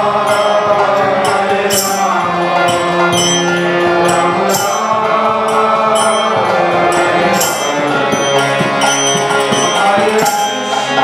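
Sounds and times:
devotional chanting: 0.0s - 11.0s
hand cymbals ringing: 0.0s - 11.0s
hand drum strokes: 0.0s - 11.0s
harmonium: 0.0s - 11.0s.

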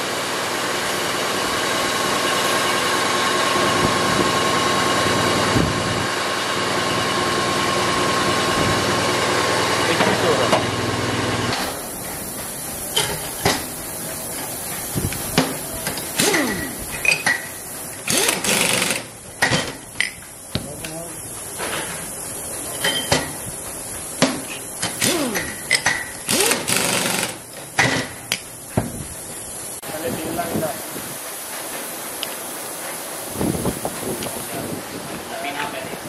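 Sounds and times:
workshop background noise: 0.0s - 36.0s
metal clinks of steel tubes: 15.9s - 17.6s
power drill whirring: 16.1s - 16.8s, 18.0s - 19.1s, 25.0s - 25.6s, 26.3s - 27.4s.

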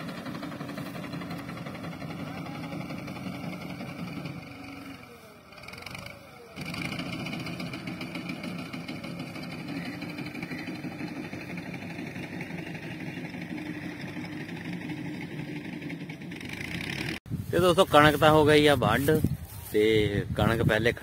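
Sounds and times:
tractor engine idling: 0.0s - 17.2s.

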